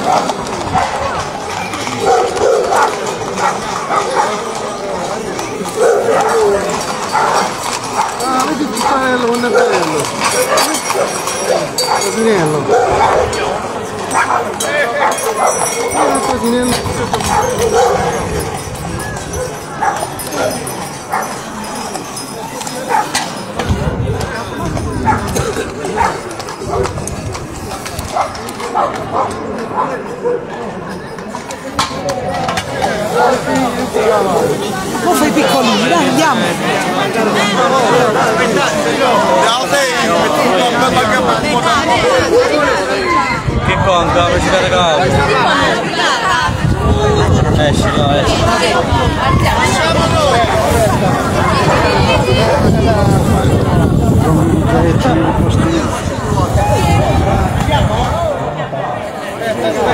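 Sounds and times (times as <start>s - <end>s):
horse hooves on pavement: 0.0s - 35.3s
crowd chatter: 0.0s - 59.9s
dog barking: 2.0s - 4.4s, 5.8s - 8.2s, 9.5s - 13.5s, 14.1s - 16.3s, 17.2s - 18.3s, 19.4s - 20.1s, 21.1s - 21.4s, 22.9s - 23.2s, 26.0s - 27.0s, 28.1s - 30.5s, 33.1s - 34.5s.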